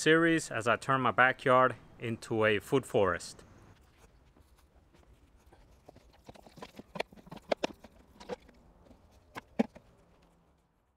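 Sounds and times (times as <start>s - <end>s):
hollow knocks of plastic jug: 5.9s - 8.5s.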